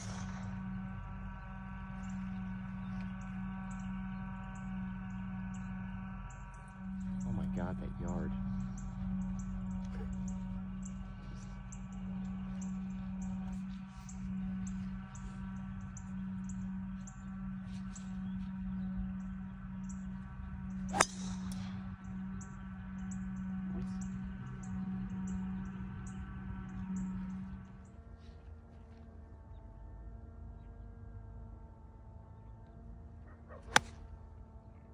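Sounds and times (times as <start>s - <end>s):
steady low hum: 0.0s - 34.9s
golf driver striking ball: 20.9s - 21.7s, 33.7s - 34.0s.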